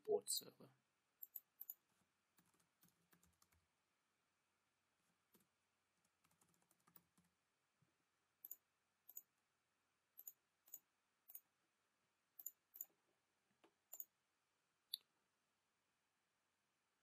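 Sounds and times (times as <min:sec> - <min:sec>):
keyboard typing: 0:01.2 - 0:03.6, 0:05.3 - 0:07.3
mouse clicks: 0:13.6 - 0:14.1.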